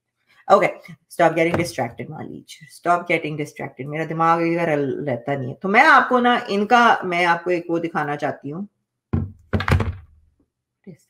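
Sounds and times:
dull thunks: 9.2s - 10.2s.

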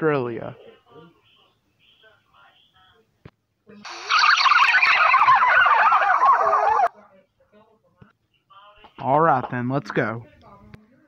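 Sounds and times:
loud rapidly warbling call: 3.9s - 6.9s.

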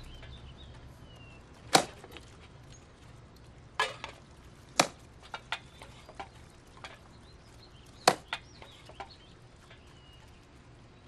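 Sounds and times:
axe chopping wooden log: 1.7s - 2.2s, 4.8s - 5.0s, 8.0s - 8.3s.

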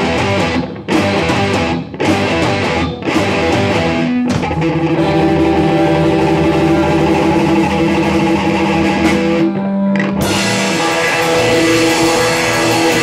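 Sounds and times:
bass guitar: 0.0s - 13.0s
drum kit: 0.0s - 13.0s
electric guitars: 0.0s - 13.0s.

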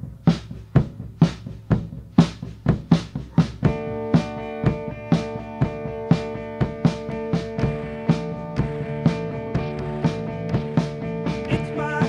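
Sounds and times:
drum kit steady beat: 0.0s - 12.0s
held guitar chord: 3.4s - 12.0s
low bass line: 3.4s - 12.0s.

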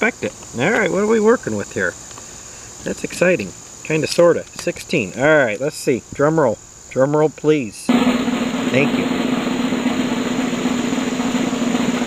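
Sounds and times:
snare drum roll: 7.9s - 12.0s.

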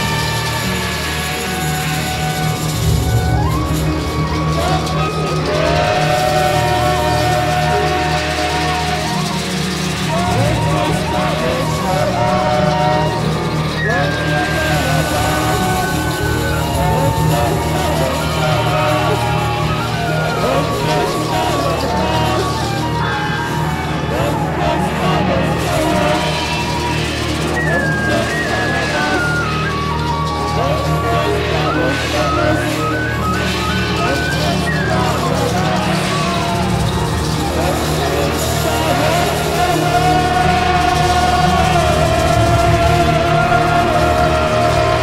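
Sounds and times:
jazz ensemble playing: 0.0s - 45.0s.

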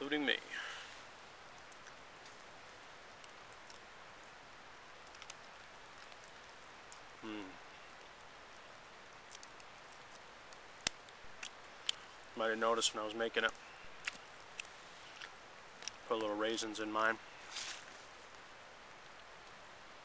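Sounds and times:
light drizzle hissing: 0.0s - 20.0s.

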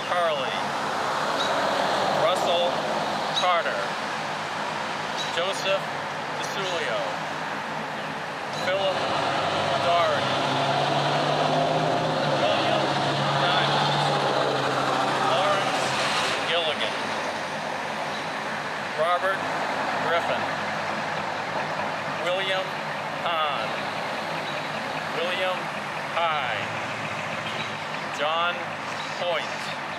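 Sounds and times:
outdoor background noise: 0.0s - 29.9s
vehicle engine running: 0.0s - 29.9s.

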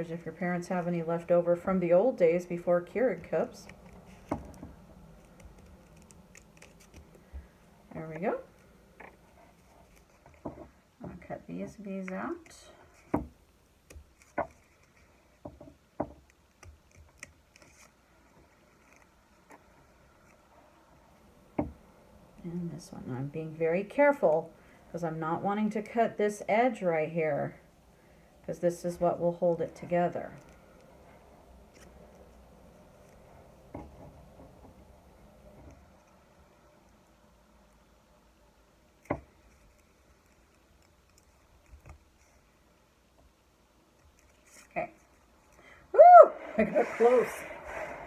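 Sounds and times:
scissors snipping paper: 5.2s - 7.2s.

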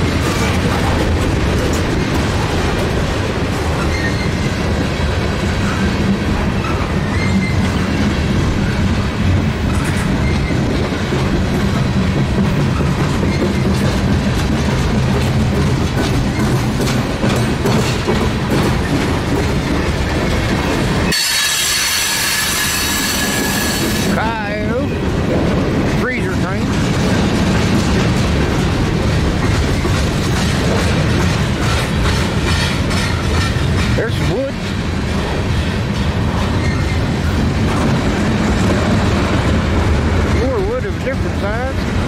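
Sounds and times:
train wheels rumbling on rail: 0.0s - 42.0s
high wheel squeal: 3.8s - 4.4s, 6.6s - 8.0s, 21.1s - 24.2s, 36.5s - 37.1s.

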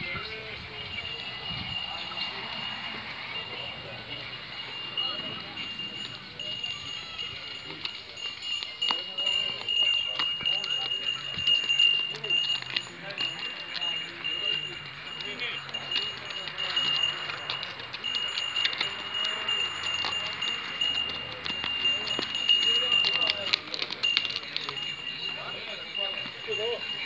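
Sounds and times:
distant voices murmuring: 0.0s - 27.0s
donkey hooves on gravel: 0.0s - 27.0s.

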